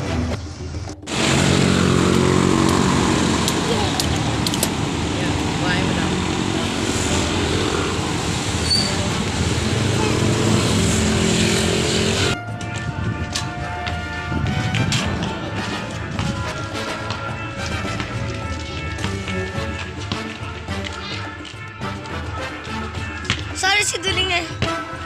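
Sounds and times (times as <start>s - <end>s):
wind and road noise: 0.7s - 25.0s
motorcycle engine running: 0.9s - 12.4s.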